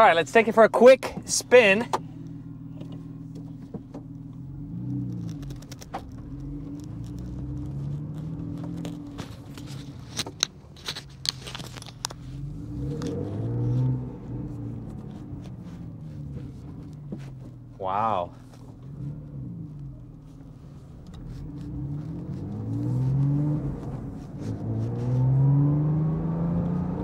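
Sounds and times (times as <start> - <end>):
car engine revving: 1.3 - 27.0.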